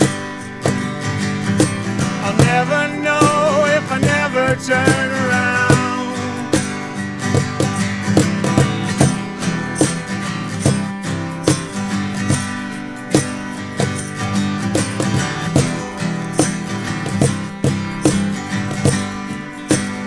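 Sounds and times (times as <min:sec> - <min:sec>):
acoustic bass guitar: 0:00.0 - 0:20.0
percussive beat: 0:00.0 - 0:20.0
strummed acoustic guitars: 0:00.0 - 0:20.0.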